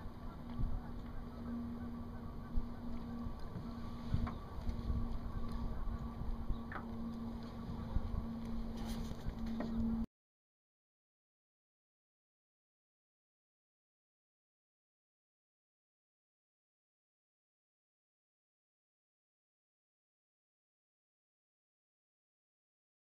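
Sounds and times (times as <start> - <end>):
wind rumbling on microphone: 0.0 - 10.0
steady low hum: 0.0 - 10.1.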